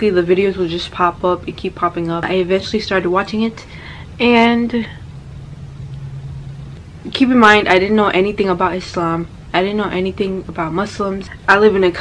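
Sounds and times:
faint low rumble: 0.0 - 12.0
low steady hum: 0.0 - 12.0.

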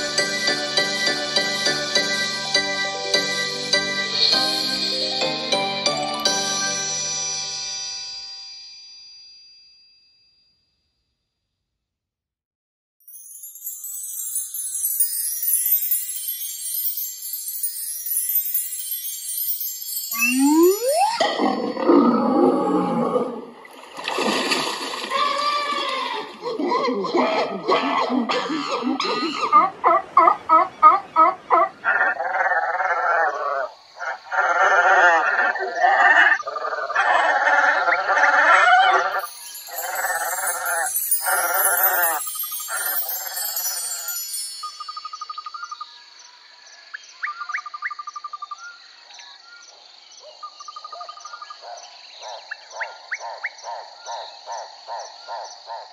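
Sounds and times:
shimmering chime run: 5.8 - 10.7, 13.0 - 22.4, 39.1 - 46.2
short beeps: 20.1 - 21.2
animal-like cries: 20.2 - 23.5.

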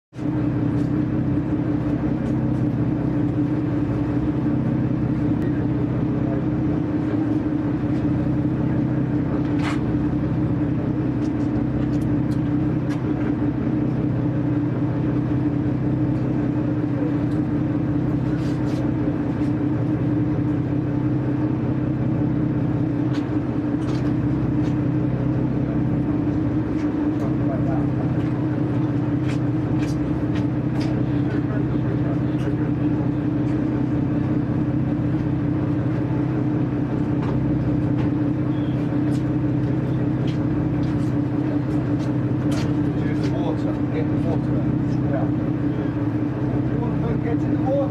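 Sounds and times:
engine drone: 0.1 - 47.9.

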